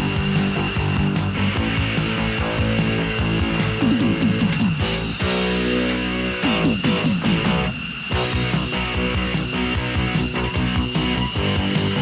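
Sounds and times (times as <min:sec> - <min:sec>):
rock music with guitar: 0:00.0 - 0:12.0.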